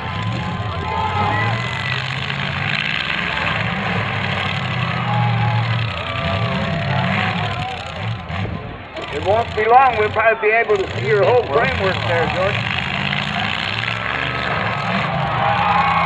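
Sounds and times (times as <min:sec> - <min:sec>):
car engines revving: 0:00.0 - 0:16.0
faint voices: 0:00.0 - 0:16.0.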